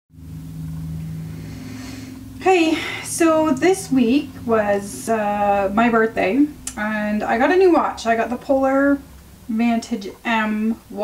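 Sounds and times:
low machine hum: 0.1s - 11.0s
even hiss: 0.4s - 6.8s.

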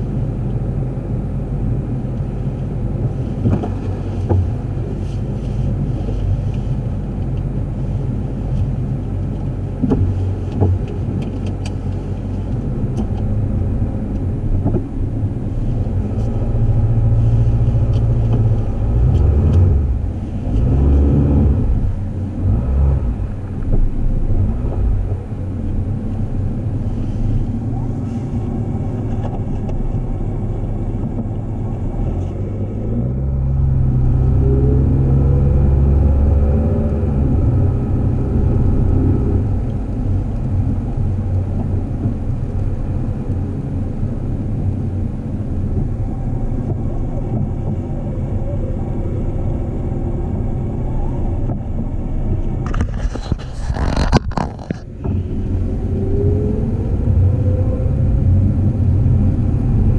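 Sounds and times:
car engine from inside cabin: 0.0s - 59.9s.

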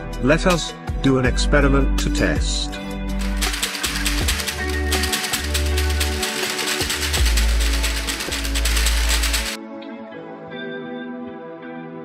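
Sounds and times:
bass-heavy background music: 0.0s - 12.0s
battery pack rattling: 3.2s - 9.6s.

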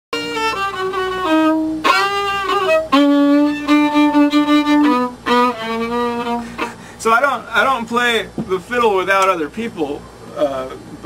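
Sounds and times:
fiddle bowing slow melody: 0.1s - 7.0s.

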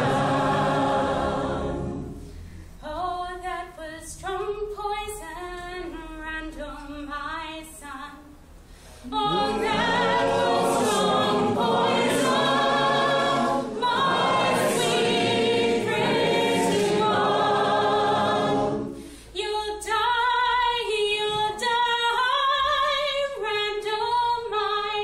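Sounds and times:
many voices singing: 0.0s - 2.3s, 9.0s - 19.1s
woman singing: 2.8s - 8.3s, 19.4s - 25.0s.

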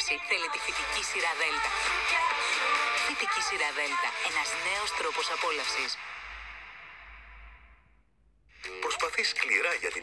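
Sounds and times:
background music: 0.0s - 7.6s.

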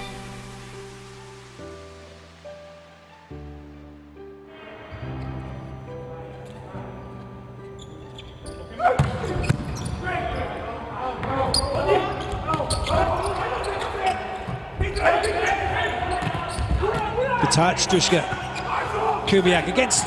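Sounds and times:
arena music with held notes: 2.6s - 9.4s
shoe squeaks: 7.6s - 10.7s, 11.5s - 16.8s
players shouting: 10.2s - 20.0s.

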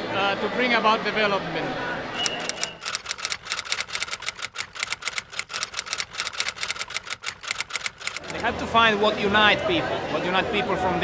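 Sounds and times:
rapid mechanical clicks: 2.2s - 8.5s.

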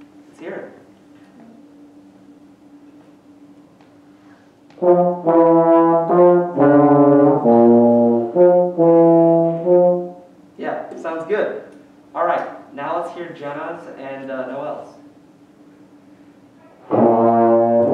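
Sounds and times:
brass instruments playing lick: 4.8s - 10.3s, 16.8s - 17.9s.

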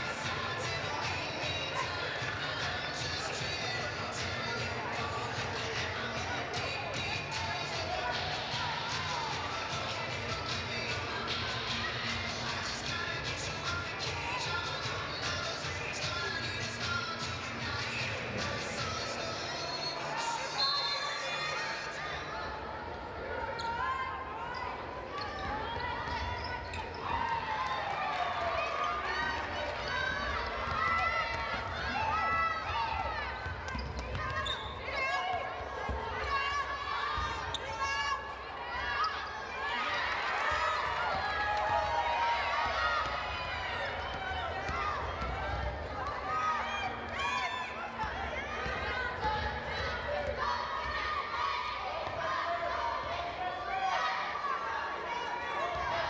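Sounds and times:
crowd voices and shouting: 0.0s - 56.0s.

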